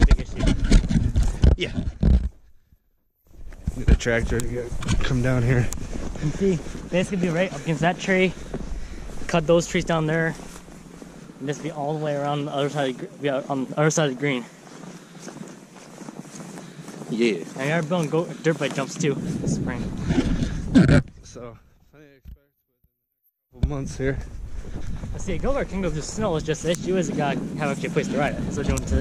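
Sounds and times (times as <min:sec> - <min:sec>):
wind rumbling on microphone: 0:00.0 - 0:02.3, 0:03.3 - 0:12.2, 0:17.0 - 0:21.4, 0:23.6 - 0:29.0
footsteps through snow: 0:03.3 - 0:20.7, 0:23.8 - 0:29.0.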